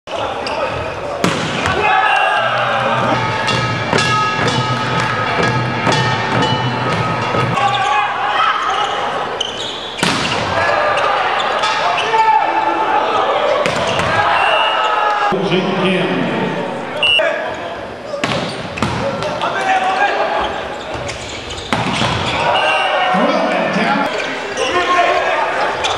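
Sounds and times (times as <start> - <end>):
spectators shouting and cheering: 0.1 - 18.2, 21.8 - 25.9
volleyball smacks: 1.2 - 1.8, 10.0 - 10.5.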